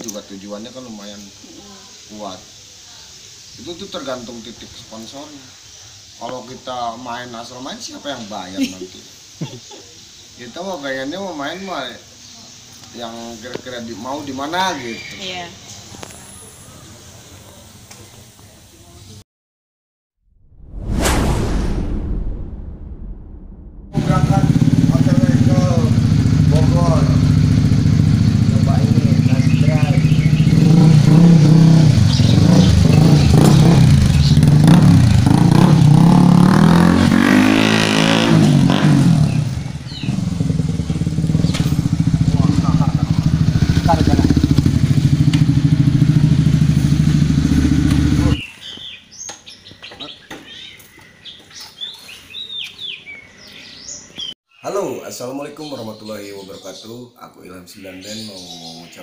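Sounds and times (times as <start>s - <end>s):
voices: 0.0s - 19.2s, 24.0s - 34.3s, 40.9s - 47.2s, 54.6s - 59.0s
faint chirps: 0.2s - 13.4s, 28.0s - 30.9s
motorcycle engine revving: 24.0s - 48.4s.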